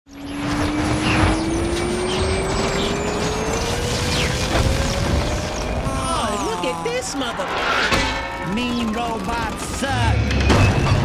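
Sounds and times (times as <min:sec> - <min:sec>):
tone rising in pitch: 0:00.1 - 0:11.0
dense mechanical rumble: 0:00.2 - 0:11.0.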